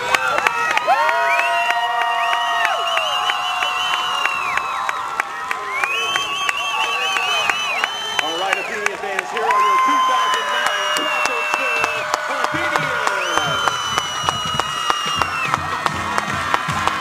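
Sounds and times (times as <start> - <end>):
crowd cheering and whooping: 0.0 - 17.0
scattered clapping: 0.0 - 17.0.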